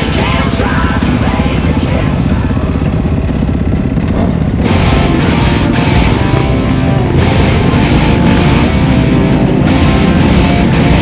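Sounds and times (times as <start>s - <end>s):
dirt bike engines pulling away: 0.0s - 11.0s
loud rock music: 0.0s - 11.0s.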